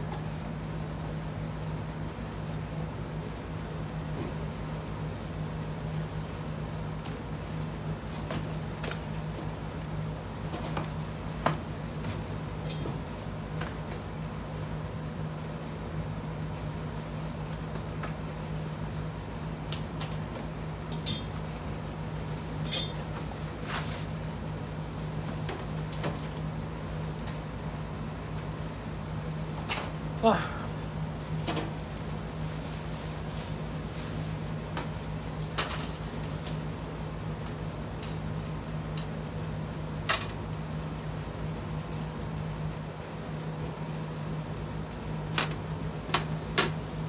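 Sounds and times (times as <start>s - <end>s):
steady low hum: 0.0s - 47.0s.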